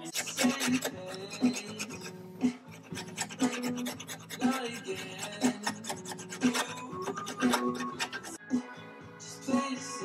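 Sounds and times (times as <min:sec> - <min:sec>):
hand tool scraping wood: 0:00.0 - 0:08.4
background music with steady beat: 0:00.0 - 0:10.0.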